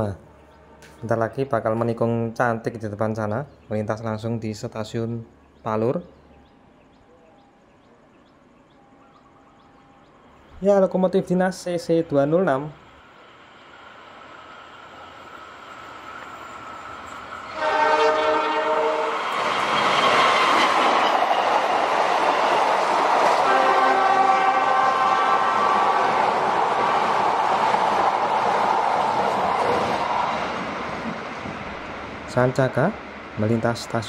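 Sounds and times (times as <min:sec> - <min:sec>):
train rumble and wheel clatter: 0:10.6 - 0:34.0
locomotive horn blast: 0:17.5 - 0:19.3, 0:23.3 - 0:26.0.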